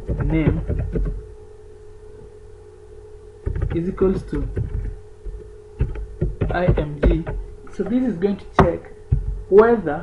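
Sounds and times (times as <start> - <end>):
low electrical hum: 0.0 - 10.0
mid-pitched electrical tone: 0.0 - 10.0.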